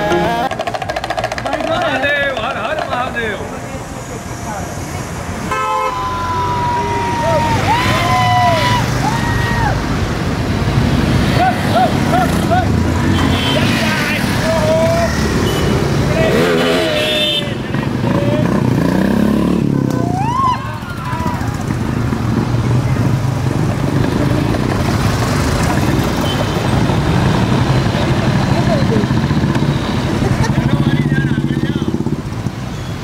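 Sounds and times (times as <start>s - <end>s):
motorcycle engines revving: 0.0s - 33.0s
motorcycle horns: 5.5s - 6.1s, 12.8s - 14.5s, 15.1s - 20.3s, 25.8s - 27.5s.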